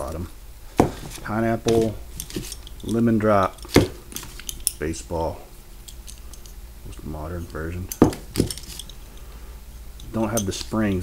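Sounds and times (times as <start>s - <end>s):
faint metal clinks: 1.7s - 5.0s
grenade knocking on table: 8.0s - 8.5s.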